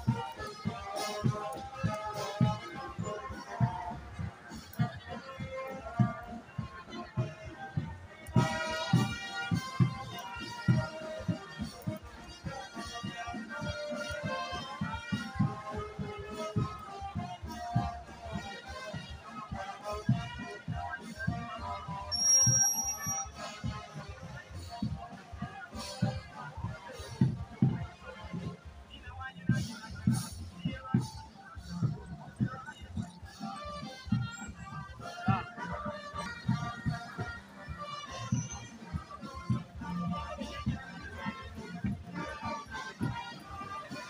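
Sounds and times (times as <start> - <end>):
marching band playing: 0.0 - 44.0
steady drumbeat: 0.0 - 44.0.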